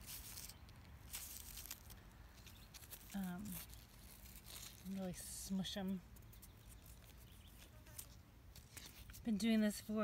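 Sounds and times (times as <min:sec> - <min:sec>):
fingers rubbing a leaf: 0:00.0 - 0:09.9.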